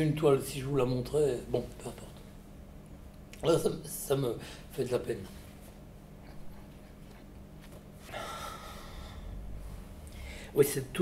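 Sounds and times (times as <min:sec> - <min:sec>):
faint room hum: 0:00.0 - 0:11.0
person exhaling softly: 0:08.0 - 0:10.6.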